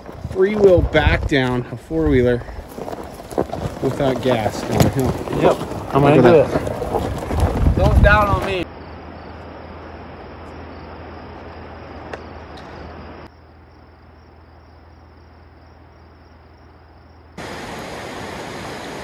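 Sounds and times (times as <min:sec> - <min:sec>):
outdoor ambient hiss: 0:07.8 - 0:19.0.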